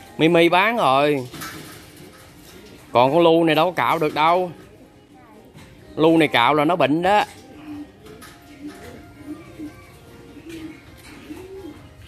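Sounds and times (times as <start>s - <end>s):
dove cooing: 0.1s - 12.0s.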